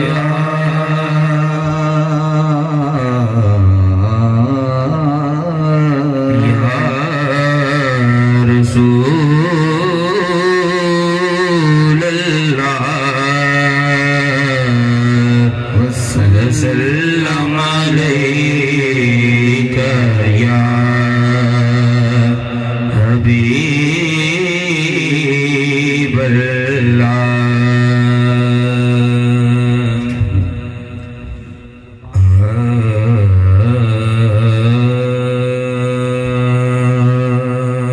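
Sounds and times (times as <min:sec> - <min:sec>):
man singing into a microphone: 0:00.0 - 0:37.9.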